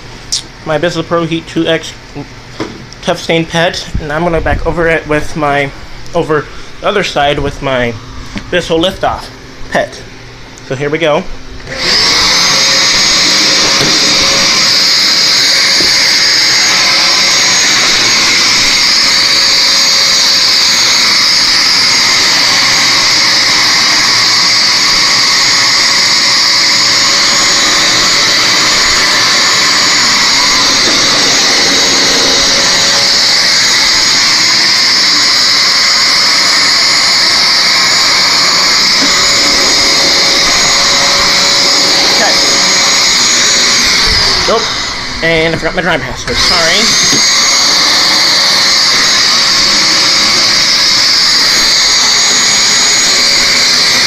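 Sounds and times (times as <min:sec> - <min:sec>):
carpet cleaner running: 0:10.9 - 0:54.0.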